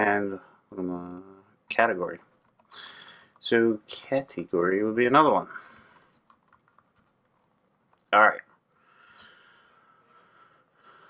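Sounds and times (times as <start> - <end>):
keyboard typing: 2.2 - 3.5, 5.6 - 8.1.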